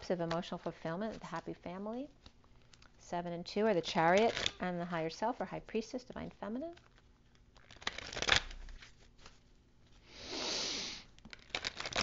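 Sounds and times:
cards riffling: 6.7 - 9.5, 11.2 - 12.0.

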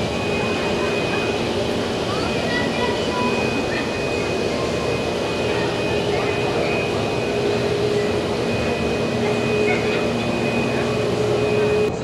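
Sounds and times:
constant hum: 0.0 - 12.0
high tone: 0.0 - 12.0.

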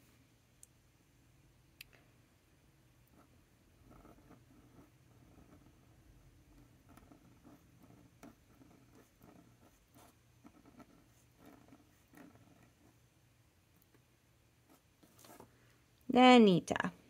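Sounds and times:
pen scratching on paper: 3.1 - 13.1, 14.6 - 15.5.

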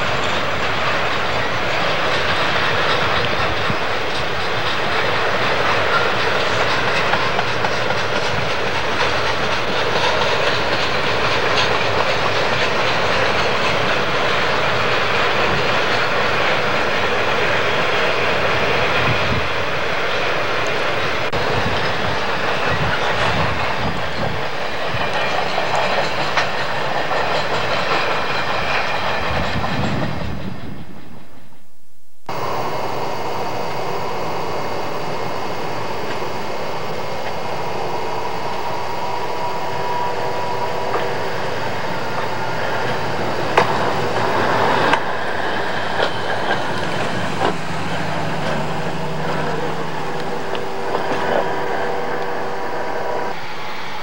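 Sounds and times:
train wheels on rails: 0.0 - 54.0.

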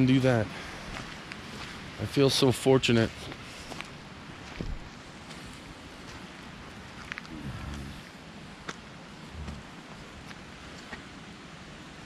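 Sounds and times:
low hum: 7.2 - 8.4, 9.1 - 10.3
wind on microphone: 9.3 - 9.7.

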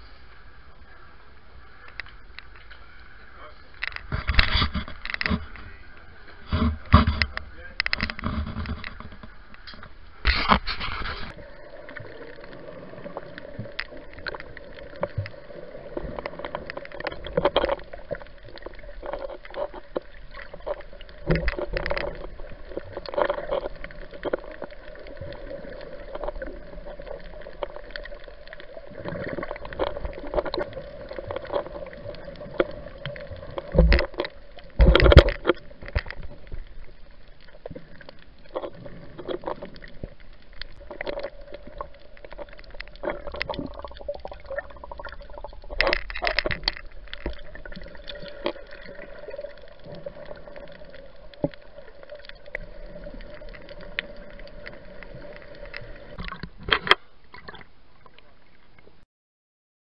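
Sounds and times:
water gurgling underwater: 10.3 - 59.0.

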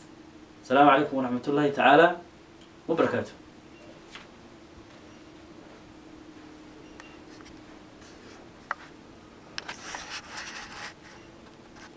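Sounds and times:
faint steady hum: 0.0 - 11.9
scratching on paper: 9.6 - 11.2.

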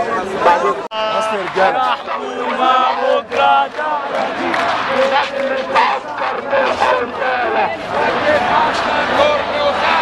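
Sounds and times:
crowd of men shouting: 0.0 - 10.0.

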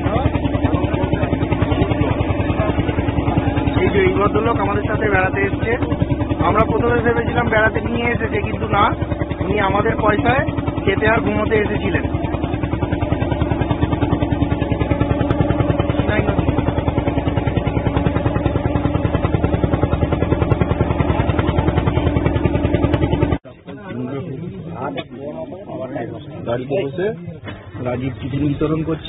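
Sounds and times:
voices talking: 0.0 - 19.1, 20.0 - 29.0
boat engine running: 0.0 - 29.0.

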